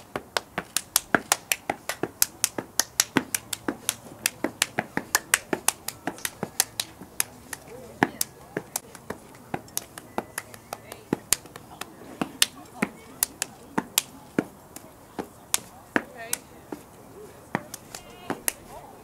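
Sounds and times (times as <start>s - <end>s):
rhythmic hand claps and slaps: 0.0s - 18.8s.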